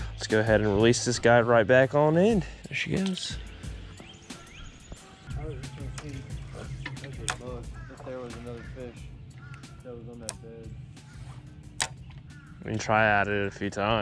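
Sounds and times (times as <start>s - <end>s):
background music: 0.0s - 14.0s.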